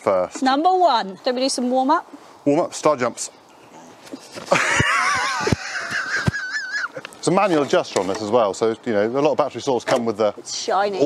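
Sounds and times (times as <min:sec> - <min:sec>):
high-pitched trembling laughter: 0:04.5 - 0:07.0.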